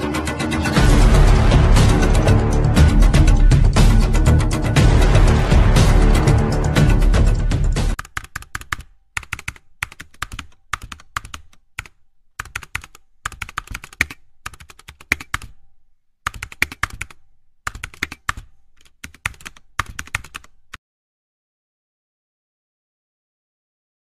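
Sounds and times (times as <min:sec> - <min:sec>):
keyboard key clicks: 0:08.0 - 0:15.6, 0:16.3 - 0:20.8.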